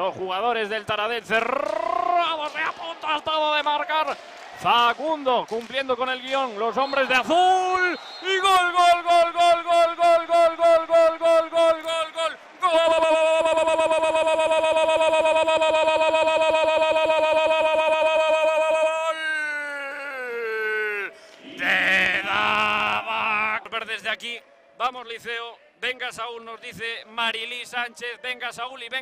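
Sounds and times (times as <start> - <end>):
sports commentator shouting: 1.0 - 5.2, 6.0 - 24.0.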